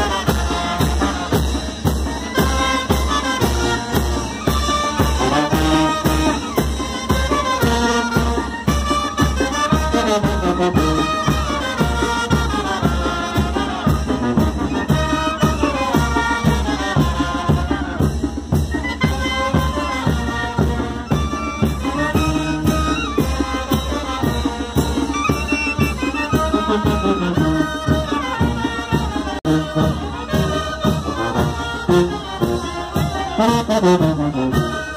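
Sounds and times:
brass band playing: 0.0s - 34.9s
trumpets and trombones melody: 0.0s - 34.9s.

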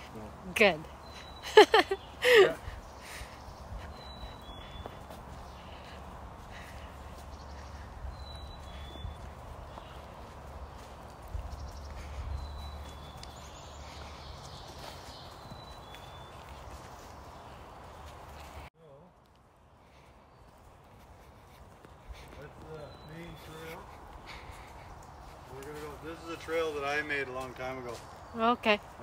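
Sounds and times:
distant highway traffic hum: 0.0s - 29.0s
footsteps on leaf litter: 3.9s - 18.7s, 20.4s - 29.0s.

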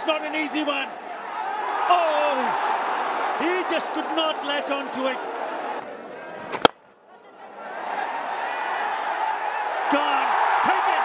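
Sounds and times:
stadium crowd noise: 0.0s - 11.0s
cricket bat striking ball: 6.5s - 6.8s.

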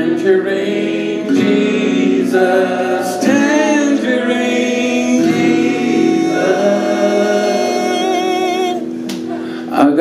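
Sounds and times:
acoustic guitar strumming: 0.0s - 9.6s
person singing long notes: 1.1s - 9.1s.

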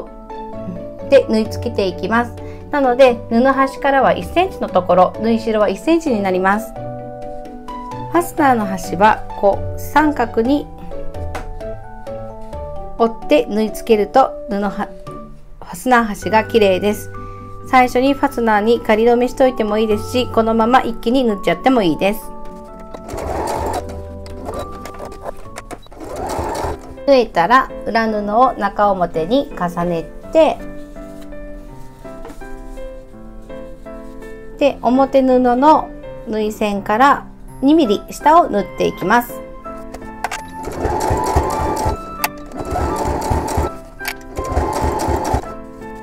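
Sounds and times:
sewing machine running: 23.0s - 26.9s, 40.6s - 45.5s.

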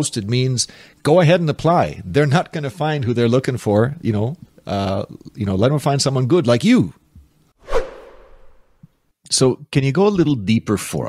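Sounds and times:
whoosh sweeping down in pitch: 7.6s - 8.7s.

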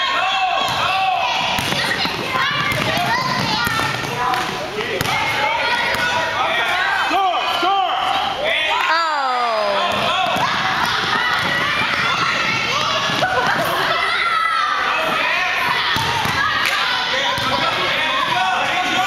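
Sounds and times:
chatter and shouts: 0.0s - 19.0s
basketballs bouncing on wooden floor: 1.4s - 5.2s, 9.9s - 13.7s.

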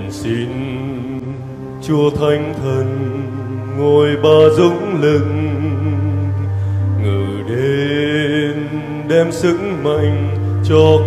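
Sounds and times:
hymn singing: 0.0s - 11.0s.

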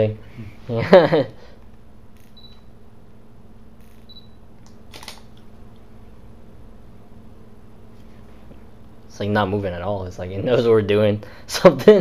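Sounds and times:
low room hum: 0.0s - 12.0s
short high camera beep: 2.2s - 2.7s, 3.8s - 4.4s
camera shutter click: 4.9s - 5.3s.

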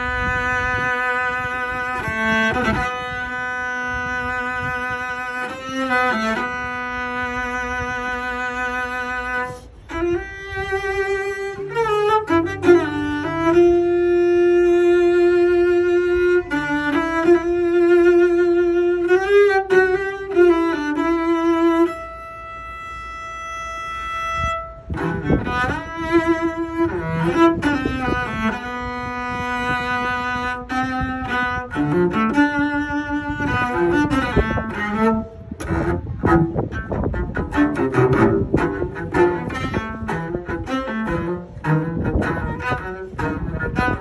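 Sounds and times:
cello holding long bowed note: 0.0s - 44.0s.

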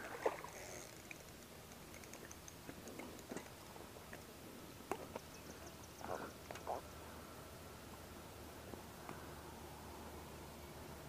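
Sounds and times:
faint clicks: 0.6s - 4.3s.

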